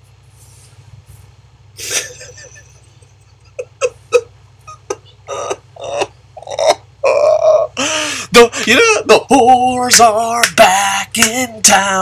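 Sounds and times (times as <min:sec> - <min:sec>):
man making exasperated vocal noises: 0:03.7 - 0:10.8.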